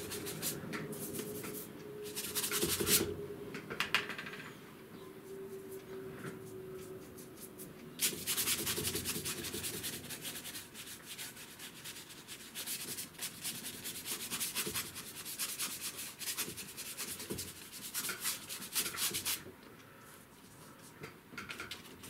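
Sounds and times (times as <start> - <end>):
paintbrush scrubbing on paper: 0.0 - 3.0, 7.0 - 19.4.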